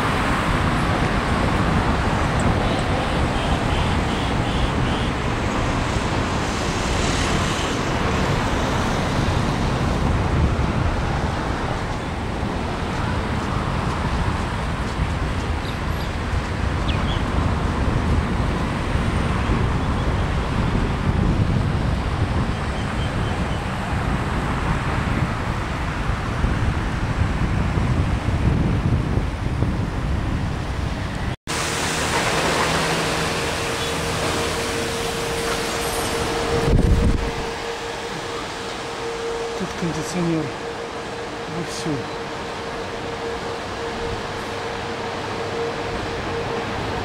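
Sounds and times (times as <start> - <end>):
road traffic: 0.0 - 47.0
wind buffeting microphone: 0.0 - 47.0.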